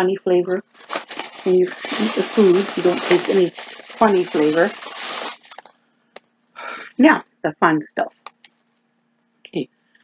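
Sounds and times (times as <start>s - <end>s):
plastic bag rustling: 0.5s - 5.8s.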